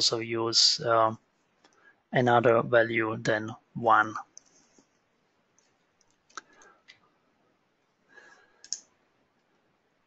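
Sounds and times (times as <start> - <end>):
computer mouse click: 8.6 - 9.5.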